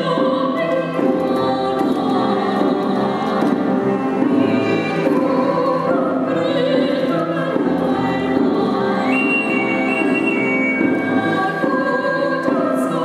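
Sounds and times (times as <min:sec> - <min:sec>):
cello: 0:00.0 - 0:13.0
piano: 0:00.0 - 0:13.0
soprano singing operatically: 0:00.0 - 0:13.0.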